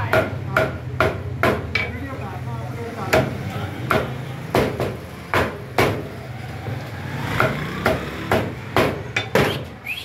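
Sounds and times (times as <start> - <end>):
cleaver chopping on wooden block: 0.0 - 1.8, 3.1 - 6.0, 7.4 - 9.6.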